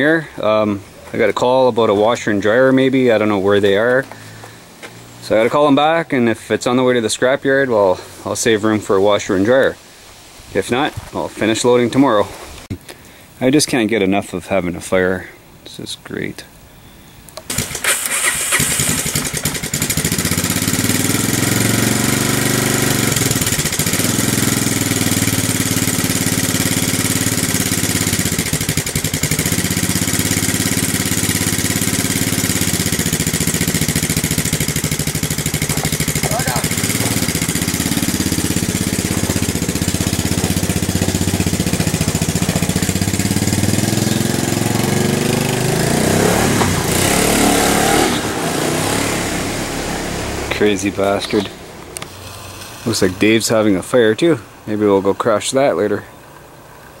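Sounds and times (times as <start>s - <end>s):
atv engine revving: 17.4s - 54.0s.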